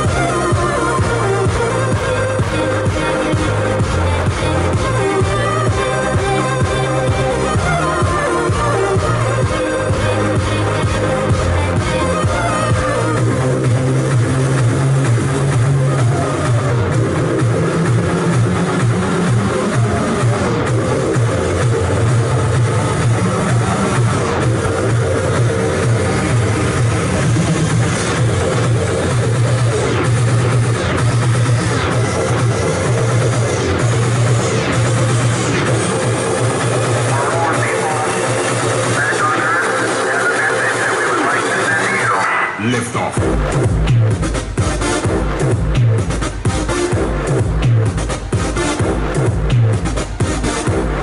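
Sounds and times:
electronic dance music: 0.0 - 51.0
steady bass line: 0.0 - 51.0.

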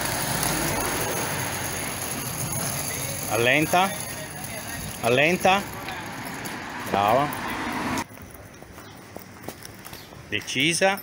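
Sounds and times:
footsteps on cobblestones: 0.0 - 11.0
outdoor background noise: 0.0 - 11.0.

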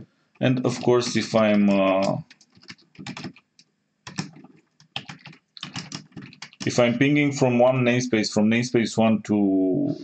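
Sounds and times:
computer keyboard typing: 0.6 - 6.9.

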